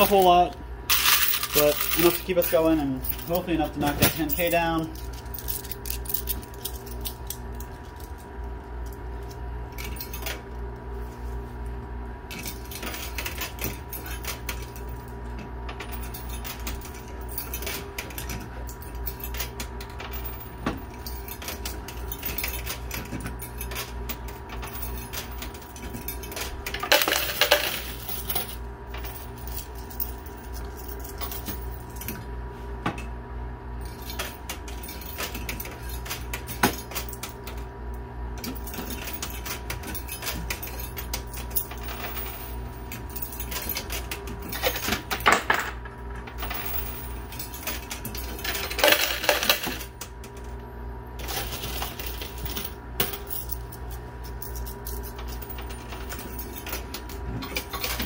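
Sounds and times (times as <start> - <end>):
coins clinking in arcade machine: 0.0 - 9.0, 9.7 - 10.4, 12.3 - 32.2, 33.8 - 37.6, 38.4 - 50.6, 51.2 - 58.0
steady hum: 0.0 - 58.0.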